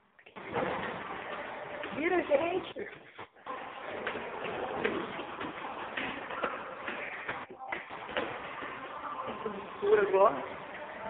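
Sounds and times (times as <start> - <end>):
dense noisy background: 0.0 - 11.0.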